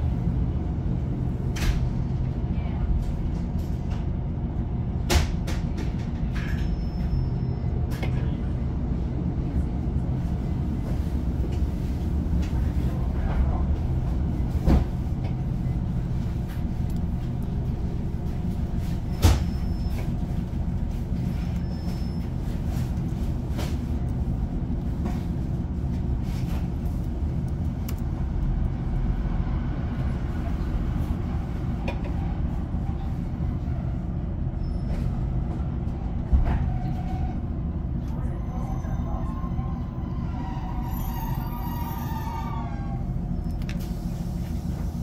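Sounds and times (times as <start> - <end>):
diesel engine drone: 0.0 - 45.0
train wheels rumbling on rail: 0.0 - 45.0.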